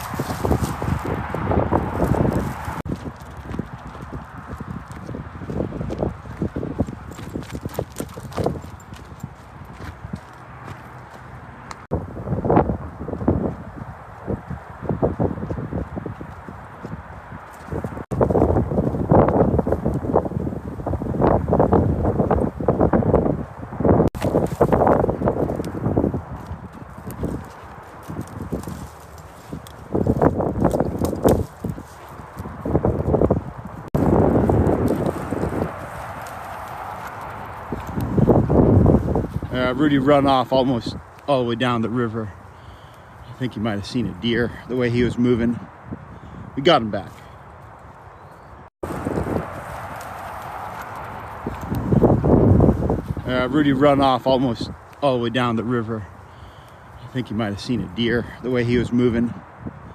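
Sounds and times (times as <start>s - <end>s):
footsteps on gravel trail: 0.0s - 11.9s, 13.0s - 20.2s, 24.2s - 45.6s, 48.8s - 58.4s.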